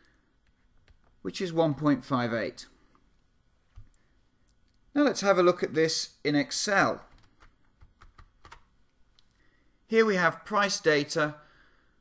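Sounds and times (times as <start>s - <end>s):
computer keyboard clicks: 7.1s - 8.7s.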